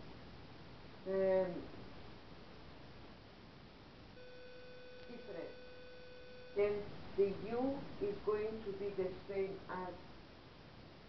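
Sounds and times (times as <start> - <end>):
faint background hiss: 0.0 - 11.0
steady electronic beep tone: 4.2 - 6.6.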